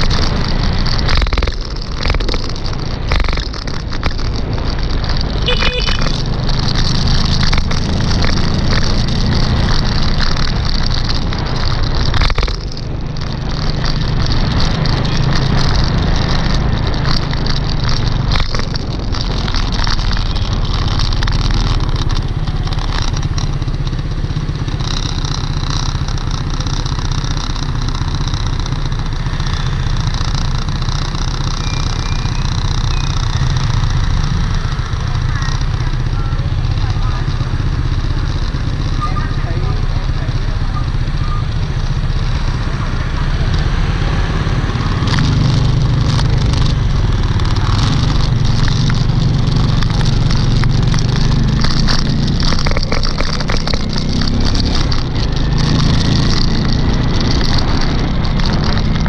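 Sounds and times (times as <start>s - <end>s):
motor scooter engines: 0.0s - 59.0s
wind rumble on microphone: 0.0s - 59.0s.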